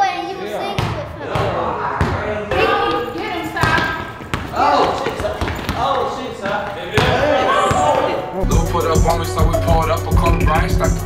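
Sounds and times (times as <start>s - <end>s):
voices talking and calling out: 0.0s - 11.0s
basketball bouncing on concrete: 0.8s - 8.1s.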